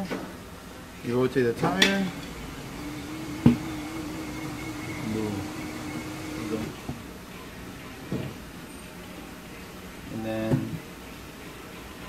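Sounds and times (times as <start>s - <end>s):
tire changer motor running: 1.9s - 7.0s.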